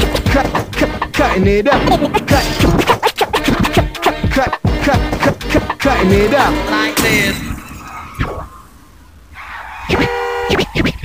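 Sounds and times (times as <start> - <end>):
scratched vocal sample: 0.0 - 7.1, 9.9 - 11.0
vinyl scratching: 0.0 - 7.3, 7.9 - 11.0.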